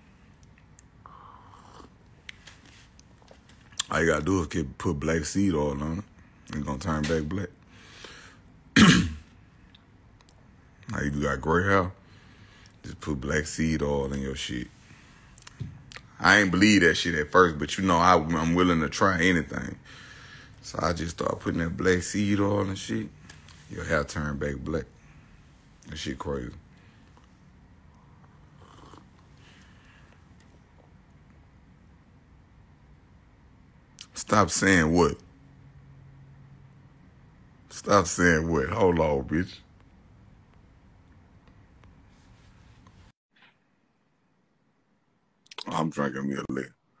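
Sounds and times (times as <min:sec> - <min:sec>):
man clearing his throat: 0:08.8 - 0:09.3
slurping sips of coffee: 0:28.2 - 0:29.4.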